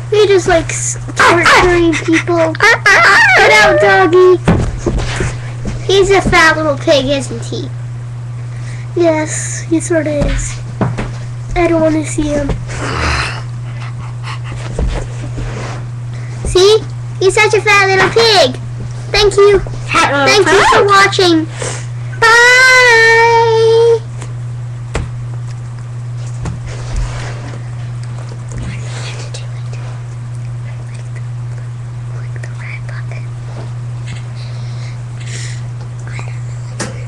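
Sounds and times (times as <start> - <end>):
low electrical hum: 0.0 - 37.0
dog panting: 13.6 - 14.9
faint whispering: 32.1 - 33.3.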